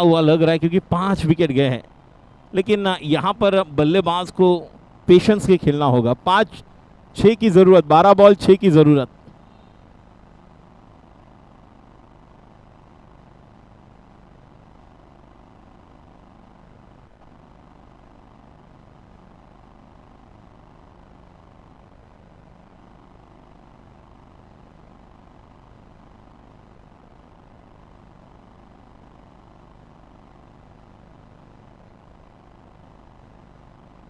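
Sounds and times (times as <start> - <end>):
low ambient hum: 0.0 - 34.0.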